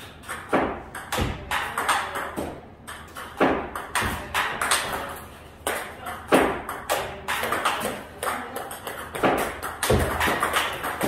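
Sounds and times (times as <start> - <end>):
table tennis ball on paddle: 0.0 - 11.0
ball bouncing on table: 0.2 - 11.0.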